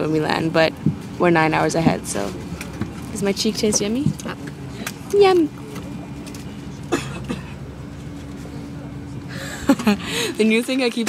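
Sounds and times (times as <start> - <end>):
airliner cabin drone: 0.0 - 11.0.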